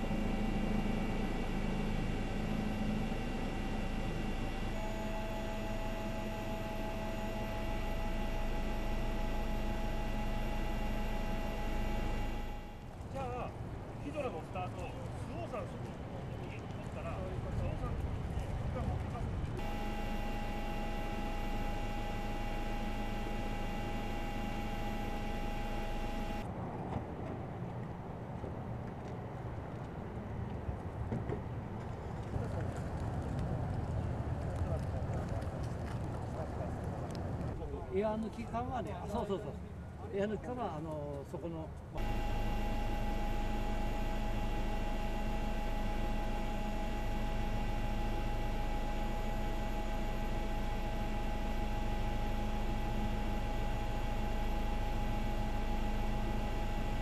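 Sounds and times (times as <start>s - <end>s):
helicopter drone from inside: 0.0s - 27.5s, 42.0s - 57.0s
outdoor rumble: 0.0s - 37.9s, 41.8s - 57.0s.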